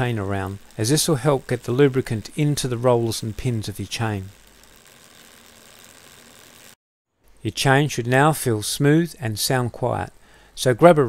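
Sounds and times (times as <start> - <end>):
bicycle chain running: 0.0 - 6.8.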